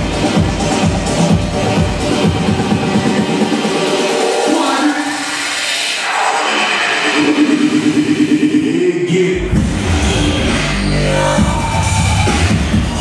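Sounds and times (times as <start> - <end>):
electronic dance music: 0.0 - 13.0
heavy bass: 0.0 - 13.0.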